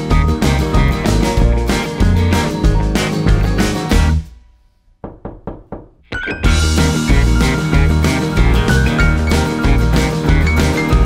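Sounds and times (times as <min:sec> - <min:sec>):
background music: 0:00.0 - 0:04.5, 0:06.1 - 0:11.0
sharp knocks: 0:05.0 - 0:06.7.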